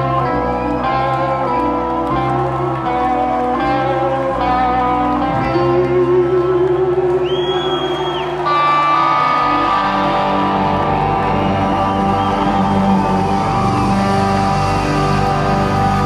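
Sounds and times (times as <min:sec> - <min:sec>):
rock band playing: 0:00.0 - 0:16.0.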